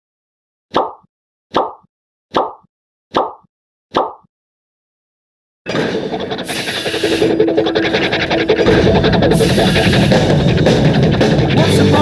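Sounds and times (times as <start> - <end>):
pop sound effect: 0.7 - 4.3.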